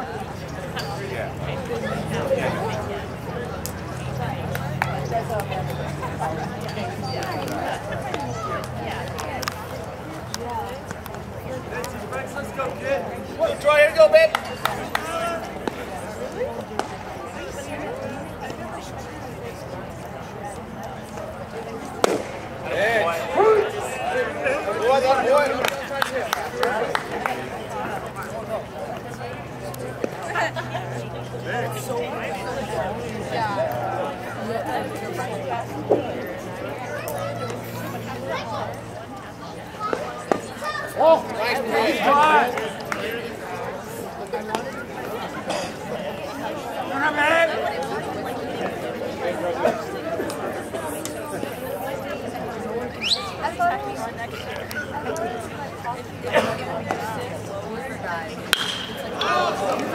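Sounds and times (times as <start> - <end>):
people chattering and calling out: 0.0 - 59.9
players calling out loudly: 58.4 - 59.9.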